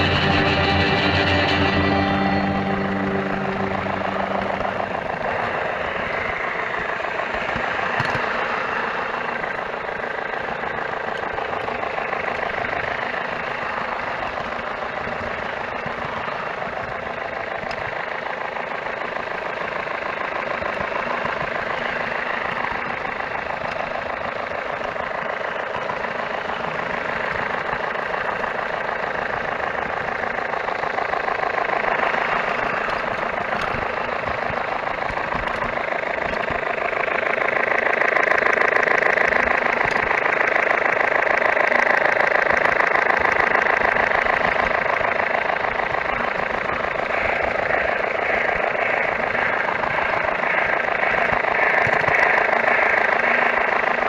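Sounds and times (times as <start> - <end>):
music: 0.0 - 4.9
wheels rattling on rail: 0.0 - 54.0.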